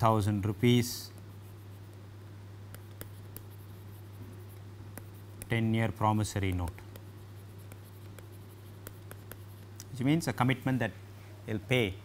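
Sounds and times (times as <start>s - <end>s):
stylus scratching on screen: 1.1s - 2.0s, 2.7s - 10.2s.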